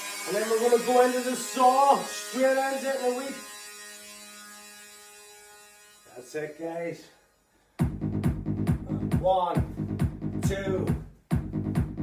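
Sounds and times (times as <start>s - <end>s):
low buzzing tone: 0.0s - 8.6s.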